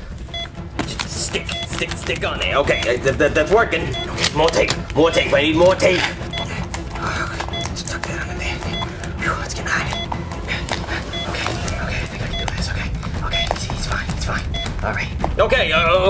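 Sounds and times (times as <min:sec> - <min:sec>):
heart monitor beeping: 0:00.0 - 0:15.3
tape crackling and rustling: 0:00.8 - 0:03.4, 0:04.1 - 0:13.8.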